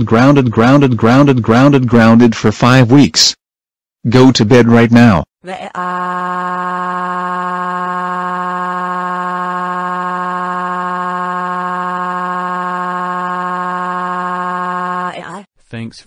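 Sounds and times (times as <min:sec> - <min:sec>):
synthesized voice crying wail: 0:05.5 - 0:15.4.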